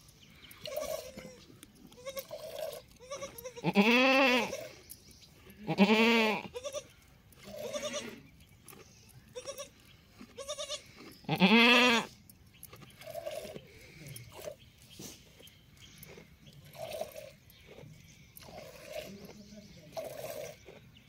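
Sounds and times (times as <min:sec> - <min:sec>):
goat bleating: 0:00.6 - 0:04.8, 0:05.5 - 0:08.3, 0:09.2 - 0:12.2.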